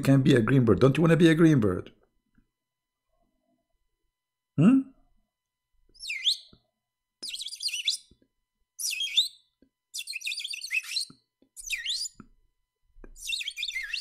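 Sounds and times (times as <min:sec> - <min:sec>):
bird chirping: 0:05.9 - 0:08.2, 0:08.8 - 0:12.2, 0:13.2 - 0:14.0.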